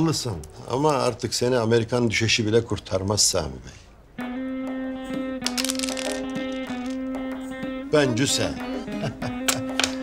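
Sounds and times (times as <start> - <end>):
background music long held note: 4.2 - 10.0.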